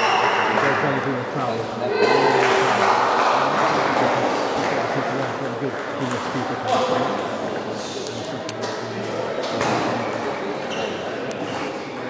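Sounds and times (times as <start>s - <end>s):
many voices in a large hall: 0.0s - 12.0s.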